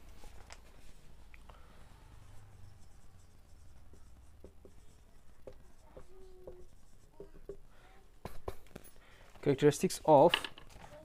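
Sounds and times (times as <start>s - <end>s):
marker writing on whiteboard: 2.1s - 9.0s.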